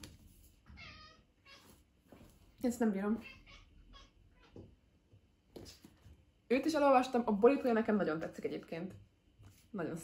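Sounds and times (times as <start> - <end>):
cat meowing: 0.7 - 1.8, 3.2 - 4.6.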